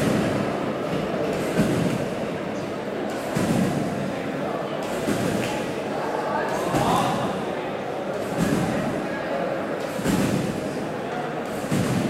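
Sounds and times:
trampoline bed thump: 0:00.0 - 0:00.6, 0:01.2 - 0:02.2, 0:03.1 - 0:04.2, 0:04.8 - 0:05.7, 0:06.6 - 0:07.4, 0:08.2 - 0:09.0, 0:09.8 - 0:10.8, 0:11.5 - 0:12.0.

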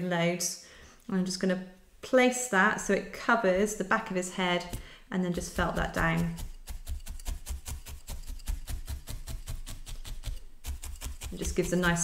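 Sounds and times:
felting needle stabbing wool: 0:04.6 - 0:12.0.

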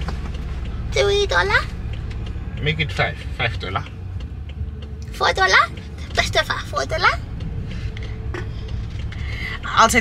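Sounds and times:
car engine rumble and road noise: 0:00.0 - 0:10.0.

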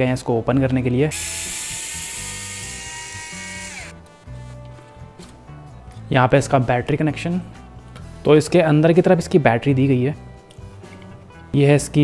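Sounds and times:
electric screwdriver whining: 0:01.1 - 0:04.0.

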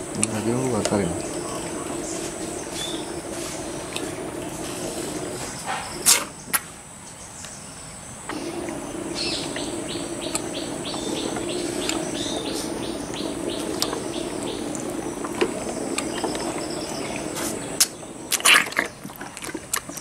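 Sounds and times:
insect chirping: 0:00.0 - 0:20.0
steady low hum: 0:00.0 - 0:20.0.

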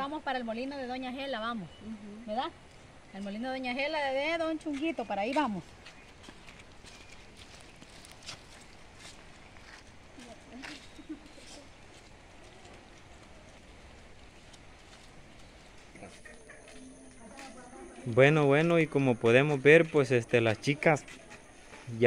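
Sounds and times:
footsteps on muddy dirt road: 0:04.4 - 0:22.0
faint distant voices: 0:09.1 - 0:22.0.

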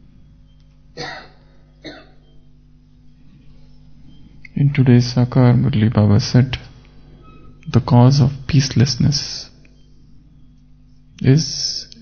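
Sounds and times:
faint steady hum: 0:00.0 - 0:12.0
man clearing his throat: 0:01.0 - 0:02.2.

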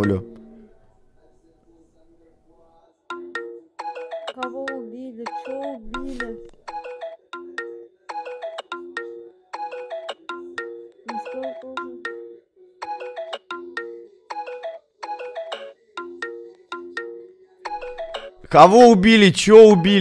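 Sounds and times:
ringtone-like electronic melody: 0:03.1 - 0:20.0.

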